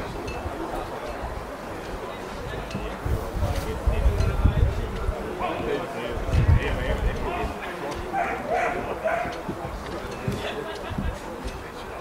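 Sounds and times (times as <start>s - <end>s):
voices talking: 0.0s - 12.0s
dog yipping: 8.2s - 9.3s.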